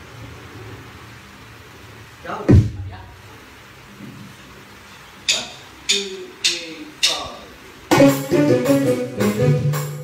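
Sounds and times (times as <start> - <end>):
faint low hum and hiss: 0.0 - 10.0.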